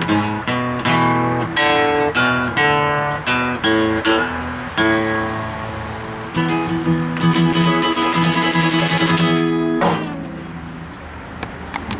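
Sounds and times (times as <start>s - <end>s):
acoustic guitar strumming: 0.0s - 11.2s.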